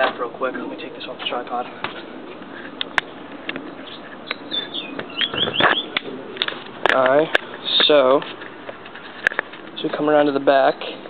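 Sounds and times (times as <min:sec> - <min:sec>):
bird chirping: 0:02.8 - 0:06.2.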